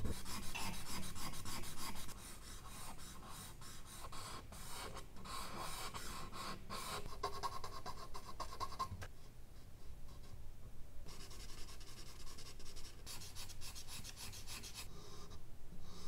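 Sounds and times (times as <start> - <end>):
charcoal scratching on paper: 0.0 - 8.9, 11.1 - 14.9.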